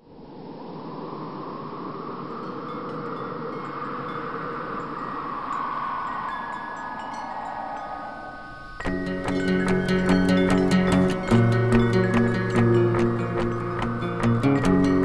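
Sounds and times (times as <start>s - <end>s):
wind-like whoosh effect: 0.0s - 15.0s
chime-like tinkles: 2.4s - 15.0s.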